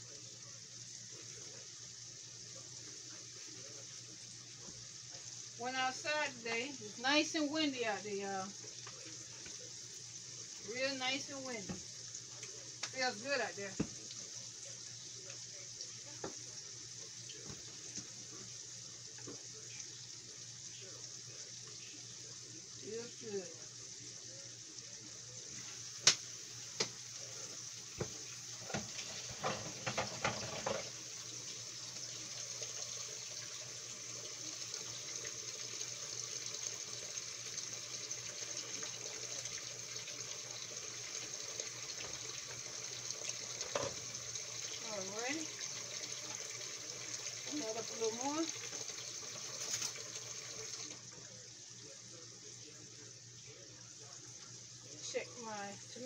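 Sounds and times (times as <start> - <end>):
food sizzling in grease: 0.0 - 56.0
grease popping: 11.6 - 16.6, 24.2 - 51.0.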